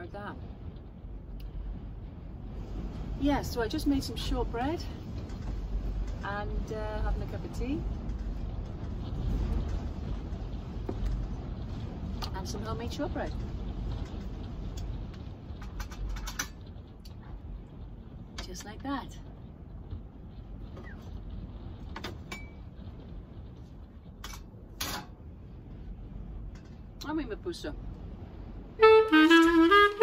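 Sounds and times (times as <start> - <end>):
low steady rumble: 0.0 - 30.0
strong wind buffeting a van: 0.0 - 30.0.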